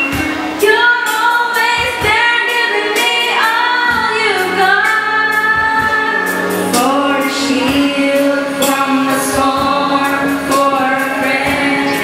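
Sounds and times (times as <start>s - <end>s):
backing music with drum beat: 0.0s - 12.0s.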